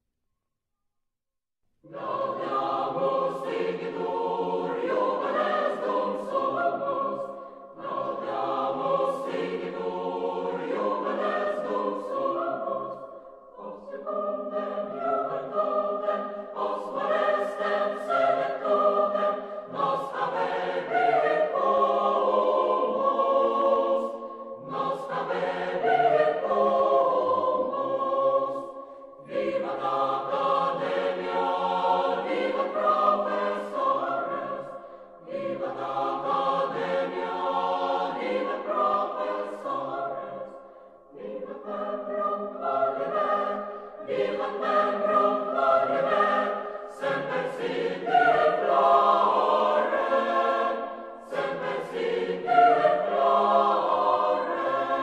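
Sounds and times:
choir singing: 1.8 - 55.0.

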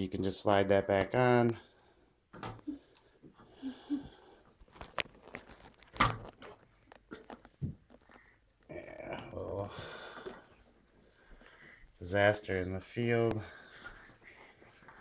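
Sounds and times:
hands handling plastic bricks: 4.6 - 8.2.

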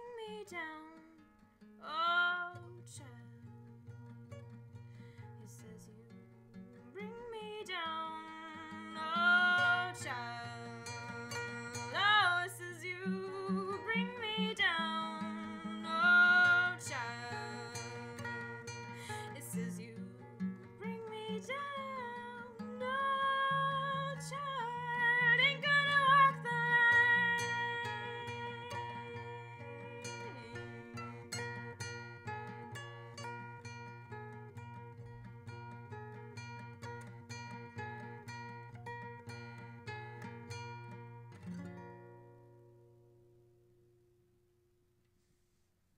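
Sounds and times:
fingerpicked classical guitar: 0.0 - 44.6.

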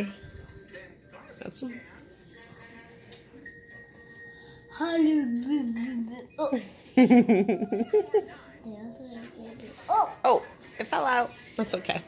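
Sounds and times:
faint television music: 0.0 - 12.0.

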